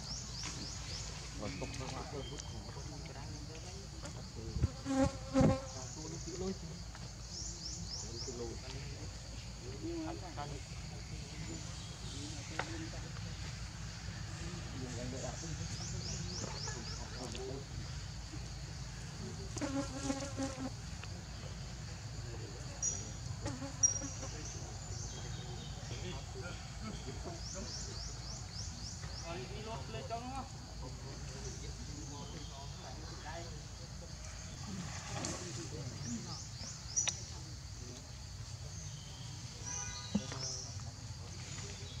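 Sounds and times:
insect chorus buzzing: 0.0 - 42.0
insect buzzing: 3.4 - 14.8, 17.6 - 26.3.

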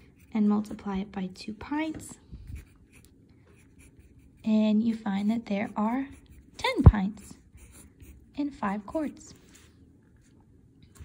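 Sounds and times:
pen scratching on paper: 0.0 - 0.5, 2.5 - 9.6.

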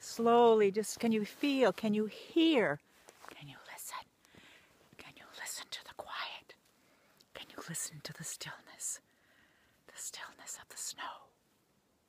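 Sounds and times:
woman whispering: 1.1 - 4.1, 5.0 - 6.6, 7.3 - 9.1, 9.9 - 11.4.

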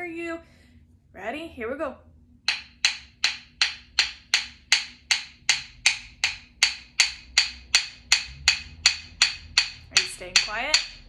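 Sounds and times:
rhythm sticks clicking: 2.5 - 11.0.

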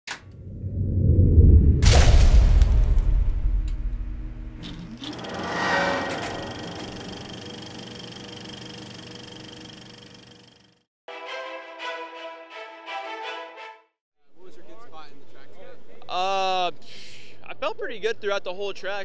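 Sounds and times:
low rumble: 0.2 - 7.3
rising whoosh: 0.3 - 7.5
sharp hit: 1.8 - 7.5
held ringing tone: 5.1 - 10.7.

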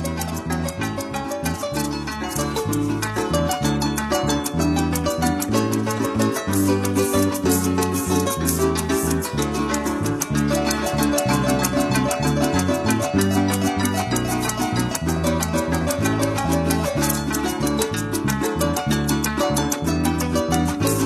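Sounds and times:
cuatro strumming: 0.0 - 21.0
fast maraca rhythm: 0.0 - 21.0
plucked harp melody: 0.0 - 21.0.

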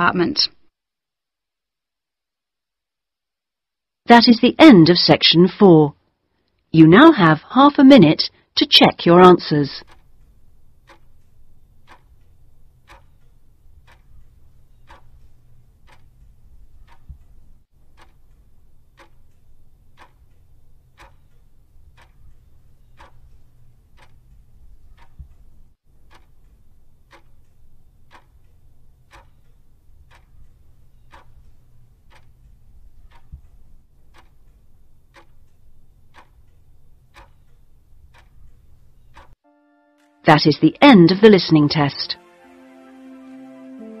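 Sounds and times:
faint steady low hum: 3.3 - 39.4
clock ticking: 6.8 - 39.4.

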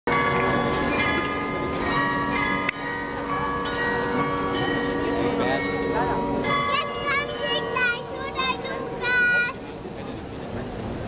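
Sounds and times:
carillon bells playing a tune: 0.1 - 9.6.

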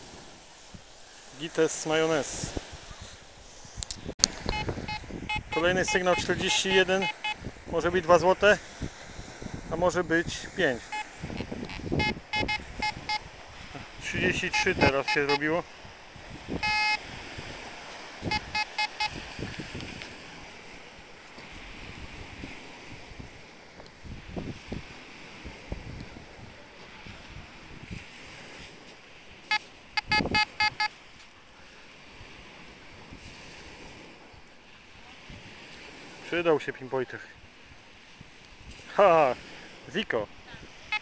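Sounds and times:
wind and surf hiss: 0.0 - 41.0
metal detector short beeps: 4.4 - 7.4, 10.9 - 13.2, 14.3 - 15.5, 16.6 - 17.0, 18.3 - 19.2, 29.5 - 30.9.

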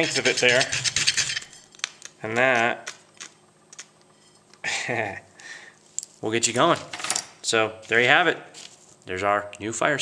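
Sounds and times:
man laughing: 4.6 - 5.4.

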